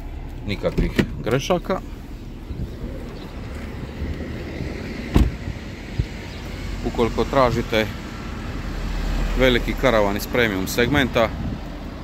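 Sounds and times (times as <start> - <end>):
steady low rumble: 0.0 - 6.8
car door shutting: 0.6 - 1.4, 5.0 - 6.2.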